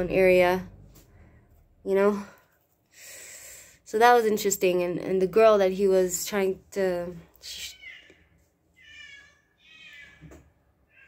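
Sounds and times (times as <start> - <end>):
cats meowing: 7.6 - 11.0.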